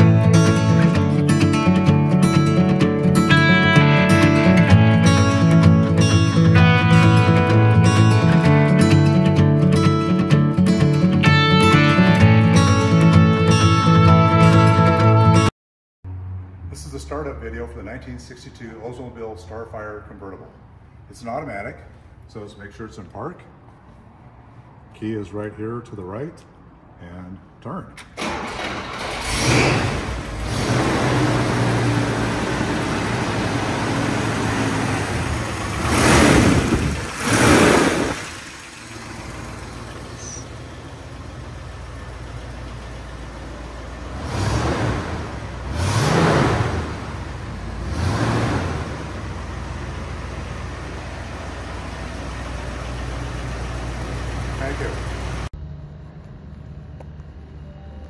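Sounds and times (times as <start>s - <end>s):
car engine starting and revving: 0.0s - 15.4s, 28.0s - 56.1s.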